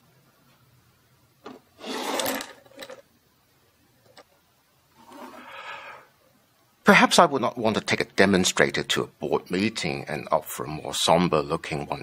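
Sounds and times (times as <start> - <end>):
pens scraping on wood: 1.5 - 3.0.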